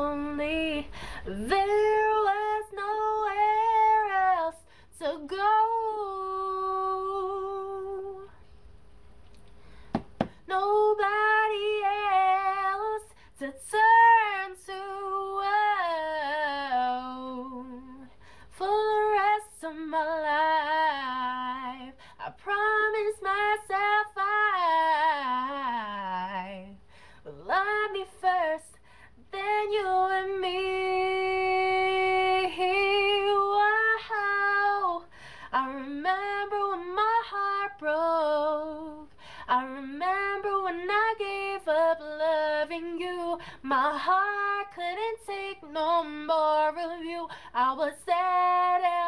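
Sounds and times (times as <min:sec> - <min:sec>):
woman singing a cappella: 0:00.0 - 0:08.5, 0:10.1 - 0:49.0.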